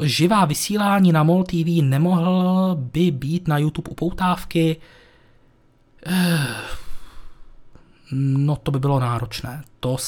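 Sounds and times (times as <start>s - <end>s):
man sighing: 6.0s - 8.0s.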